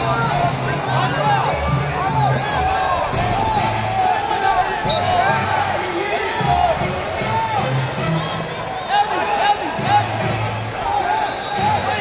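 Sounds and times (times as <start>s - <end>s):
many people talking: 0.0s - 12.0s.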